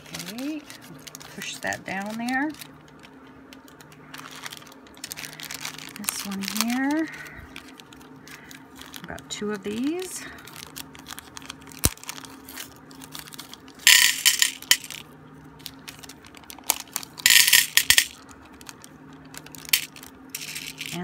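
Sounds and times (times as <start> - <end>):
plastic zip bag crinkling: 0.0 - 21.0.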